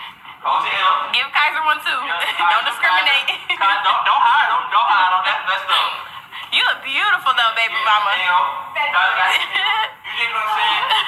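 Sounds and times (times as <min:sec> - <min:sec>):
people talking: 0:00.4 - 0:11.0.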